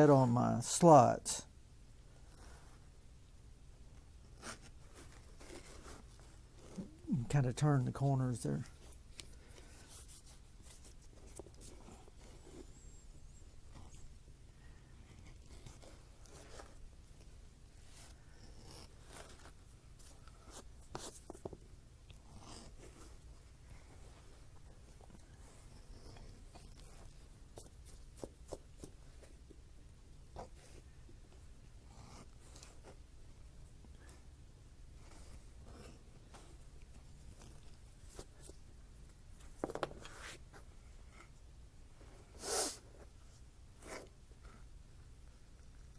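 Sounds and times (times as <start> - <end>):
edger scraping leather: 4.4 - 7.0, 17.8 - 21.2.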